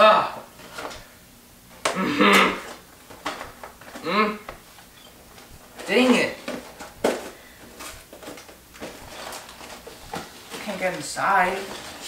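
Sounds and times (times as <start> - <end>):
person grunting with effort: 1.9 - 2.7, 4.0 - 4.5.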